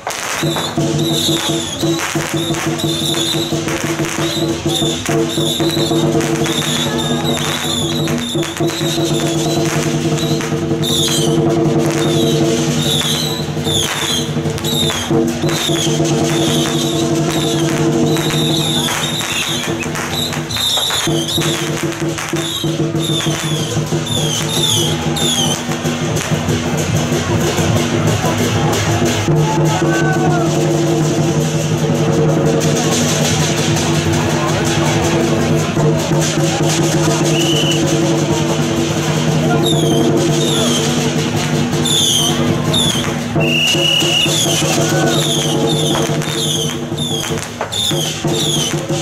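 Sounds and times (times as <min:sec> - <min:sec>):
drum strikes: 0:00.0 - 0:49.0.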